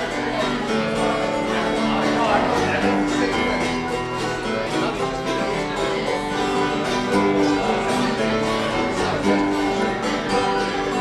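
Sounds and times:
mandolin picking: 0.0 - 11.0
strummed acoustic guitars: 0.0 - 11.0.

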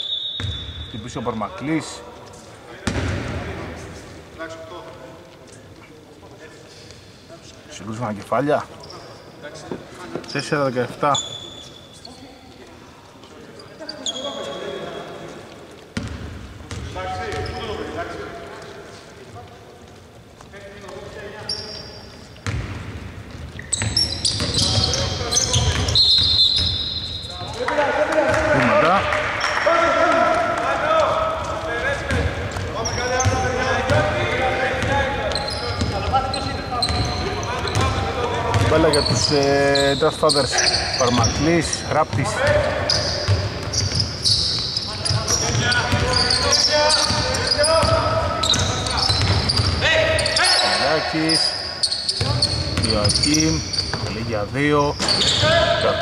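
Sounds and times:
sneaker squeaks: 0.0 - 1.4, 8.6 - 12.6, 13.2 - 18.4, 20.8 - 27.7, 29.4 - 56.0
basketball bouncing on wooden court: 0.4 - 0.8, 2.8 - 3.6, 16.0 - 17.7, 22.4 - 27.5, 30.1 - 39.3, 41.0 - 50.2, 52.1 - 54.2.

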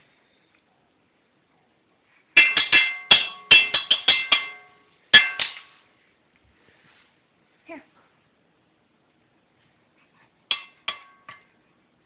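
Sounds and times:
drumstick striking ringing object: 2.4 - 5.8, 10.5 - 11.6.

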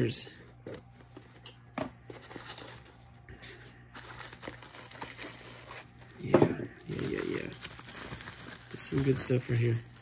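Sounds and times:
bubble wrap crinkling: 2.0 - 10.0.

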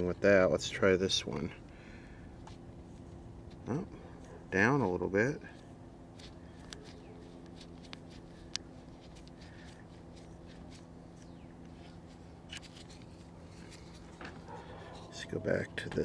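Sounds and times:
low electrical hum: 0.0 - 16.0.

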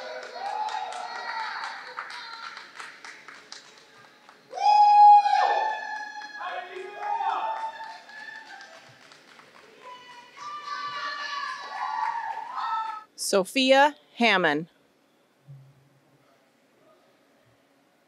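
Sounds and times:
people cheering and whooping: 0.0 - 2.8, 4.5 - 13.1
people clapping: 0.0 - 13.1.

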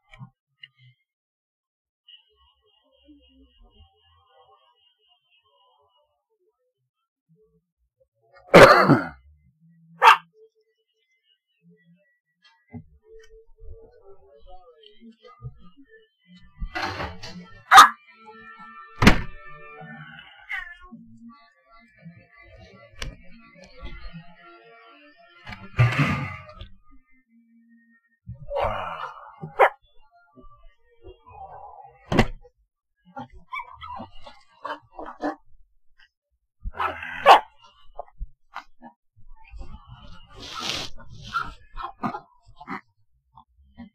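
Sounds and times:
faint television show: 2.0 - 32.4, 33.0 - 35.6, 36.7 - 43.9
dog barking: 10.0 - 10.3, 17.7 - 18.0, 29.4 - 29.8, 36.7 - 37.5.

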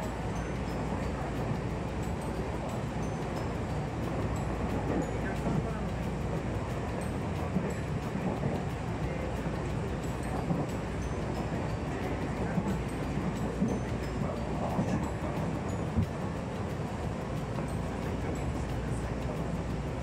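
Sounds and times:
train cabin noise: 0.0 - 20.0
train wheels rumbling on rails: 0.0 - 20.0.

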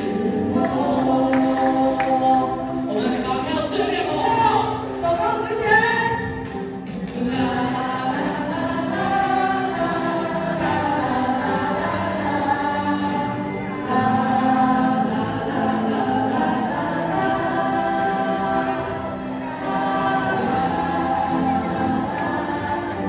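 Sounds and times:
group singing pop song: 0.0 - 23.0.

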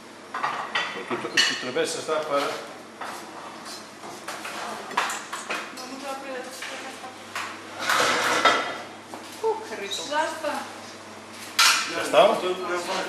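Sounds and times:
plates and utensils clattering: 0.3 - 5.8, 7.7 - 8.8, 11.6 - 12.0.

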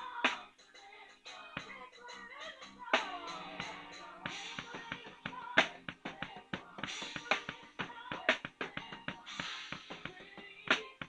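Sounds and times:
drum and cymbal hits: 0.0 - 11.0
pitched accompanying music: 0.0 - 11.0.

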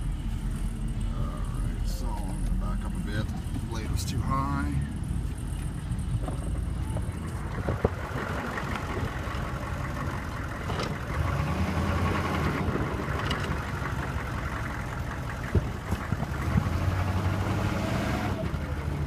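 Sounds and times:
diesel truck engine running: 0.0 - 19.0.

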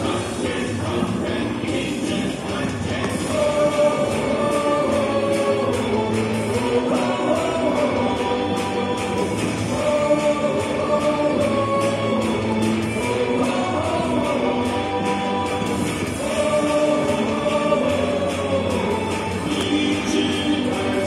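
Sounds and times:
chorus singing cheer song: 0.0 - 21.0
steady beat: 0.0 - 21.0.

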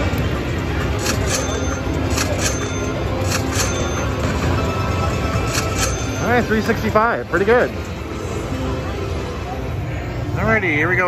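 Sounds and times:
slot machine win music: 0.0 - 8.1
slot machine chimes: 0.9 - 7.3.

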